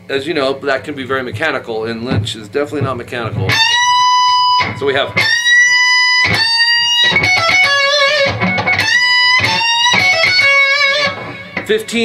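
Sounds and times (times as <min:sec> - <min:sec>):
electric guitar lead lick: 0:03.0 - 0:12.0.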